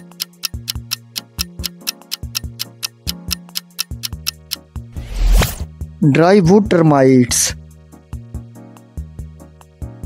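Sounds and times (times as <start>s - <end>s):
clock-like timer ticks: 0.0s - 4.7s
background music with low notes: 0.0s - 10.0s.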